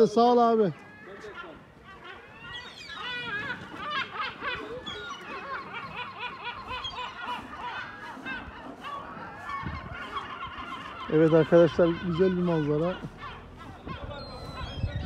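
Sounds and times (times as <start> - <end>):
gulls calling: 0.0 - 15.0.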